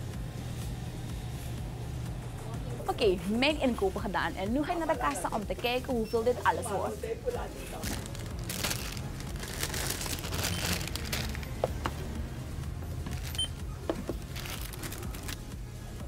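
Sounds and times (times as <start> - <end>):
steady low hum: 0.0 - 16.0
plastic bag crinkling: 7.7 - 11.6, 13.1 - 13.4, 14.1 - 15.4.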